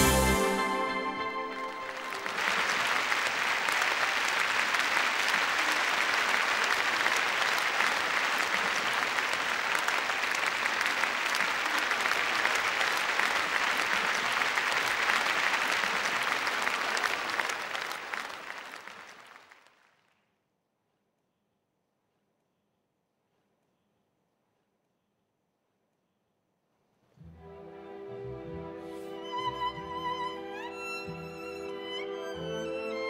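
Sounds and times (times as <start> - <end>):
audience applauding: 0.0 - 20.1.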